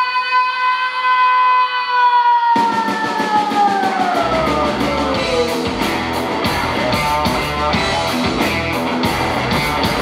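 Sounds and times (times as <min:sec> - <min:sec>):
drums and cymbals crashing: 0:02.5 - 0:10.0
deep bass: 0:04.0 - 0:10.0.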